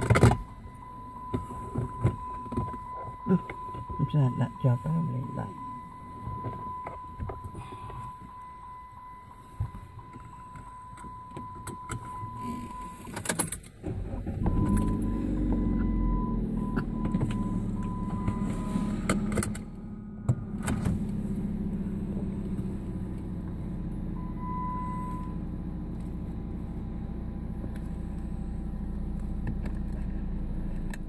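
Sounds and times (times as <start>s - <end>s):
car engine starting and idling: 0.0s - 31.0s
ignition clicks: 0.0s - 31.0s
steady high beep: 0.5s - 12.8s.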